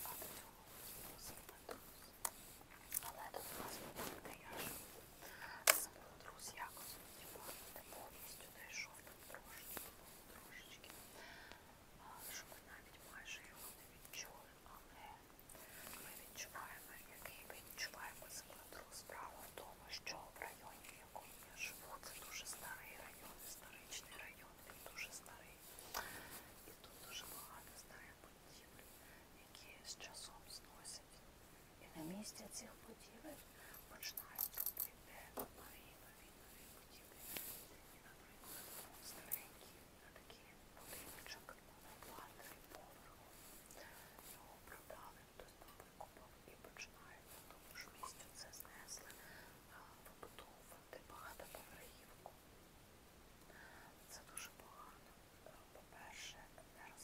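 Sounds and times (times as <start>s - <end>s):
woman whispering: 0.0s - 31.2s, 31.8s - 52.4s, 53.5s - 57.0s.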